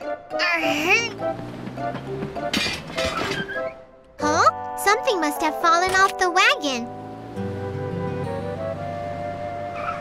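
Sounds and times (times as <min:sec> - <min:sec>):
background music: 0:00.0 - 0:10.0
cartoon object clattering: 0:02.5 - 0:03.7.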